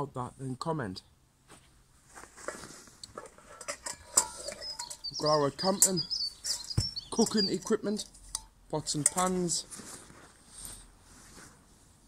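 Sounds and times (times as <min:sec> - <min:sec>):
fabric rustling: 0:01.5 - 0:03.3, 0:09.6 - 0:12.0.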